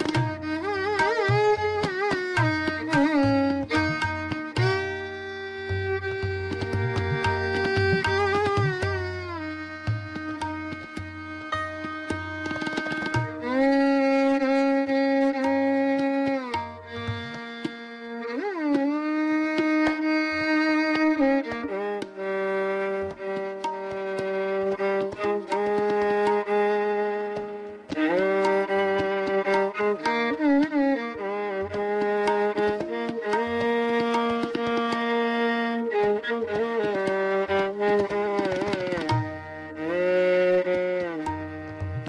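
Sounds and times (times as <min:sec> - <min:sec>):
light tabla strokes: 0:00.0 - 0:42.0
violin playing held notes: 0:00.0 - 0:42.0.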